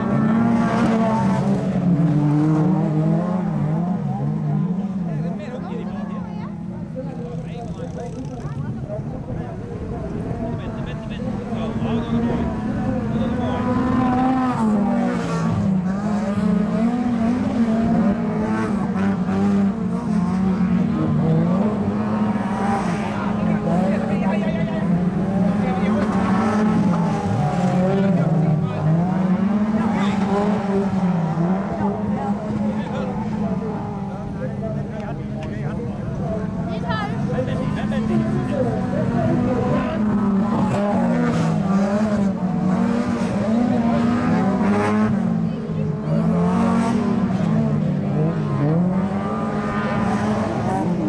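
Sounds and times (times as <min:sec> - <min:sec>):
racing car engines revving: 0:00.0 - 0:51.0.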